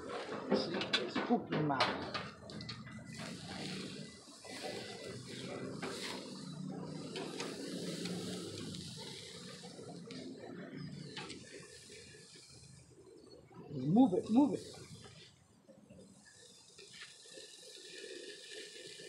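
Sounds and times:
meat sizzling on a grill: 2.2s - 19.0s.

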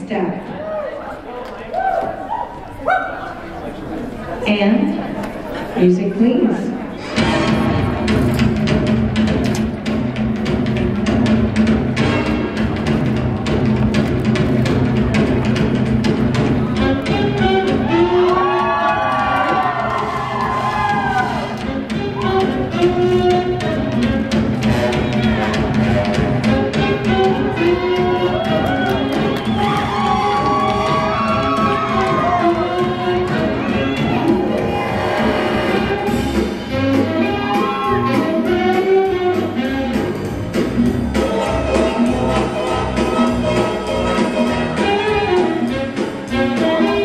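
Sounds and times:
murmur of crowd chatter: 0.0s - 20.1s, 21.4s - 47.0s
ballroom music over loudspeakers: 0.0s - 47.0s
spectators shouting: 17.8s - 21.5s, 28.2s - 35.2s.

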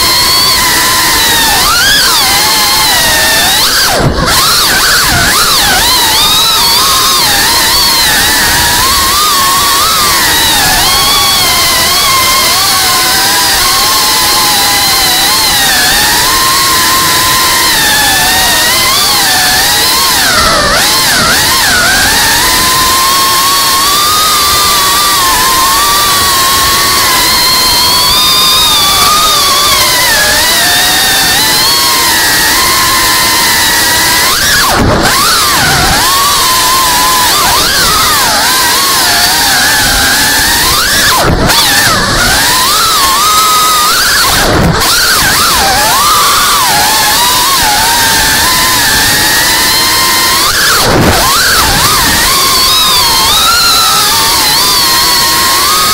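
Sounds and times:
drone motors whining: 0.0s - 55.9s.

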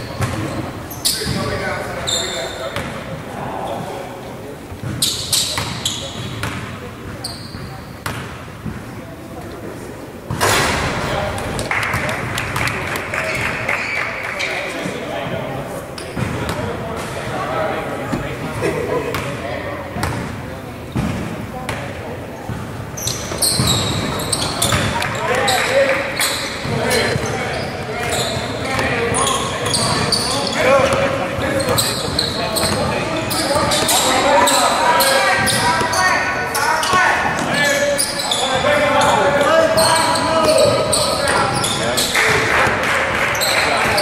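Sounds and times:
sneakers squeaking on court: 0.0s - 3.9s, 4.8s - 8.8s, 11.5s - 15.0s, 16.0s - 17.3s, 20.0s - 42.4s, 43.3s - 44.0s
echoing claps and knocks: 10.6s - 14.5s, 42.1s - 44.0s.

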